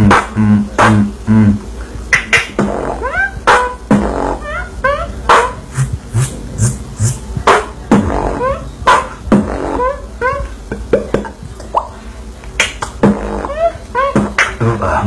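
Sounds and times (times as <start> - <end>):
beatboxed hissing hi-hat: 0.0 - 4.4, 5.3 - 15.0
beatboxing kick and snare: 0.0 - 15.0.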